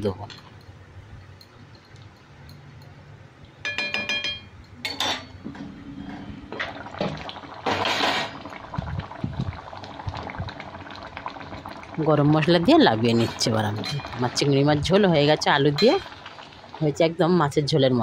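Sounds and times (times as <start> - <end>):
metal utensil clinking on pan: 3.6 - 5.4, 15.8 - 16.0
curry bubbling in pan: 6.5 - 17.2.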